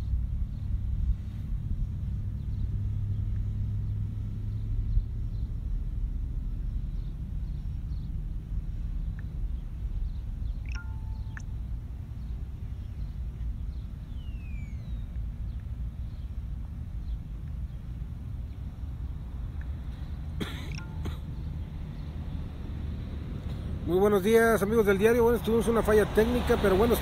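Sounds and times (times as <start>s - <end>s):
low outdoor rumble: 0.0s - 27.0s
faint bird chirps: 6.6s - 16.4s, 20.0s - 21.8s.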